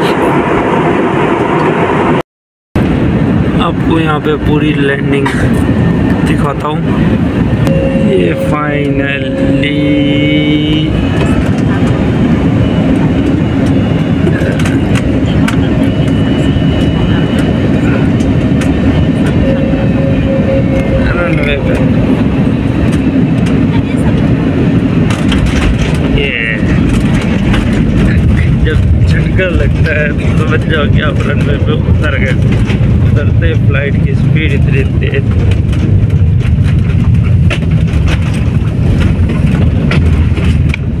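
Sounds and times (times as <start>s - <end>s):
airliner cabin roar: 0.0s - 2.2s, 2.8s - 41.0s
voices: 7.7s - 12.8s, 13.7s - 22.0s, 23.6s - 24.5s.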